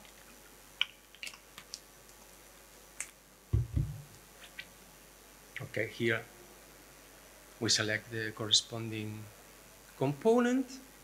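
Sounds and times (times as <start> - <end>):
deep microphone handling bumps: 3.5 - 4.1.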